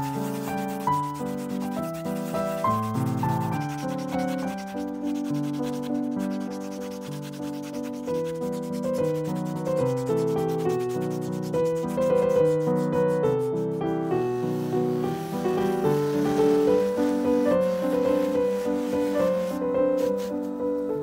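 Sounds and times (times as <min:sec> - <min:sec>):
pendant rubbed on cloth: 0:00.0 - 0:20.8
background piano music: 0:00.0 - 0:21.0.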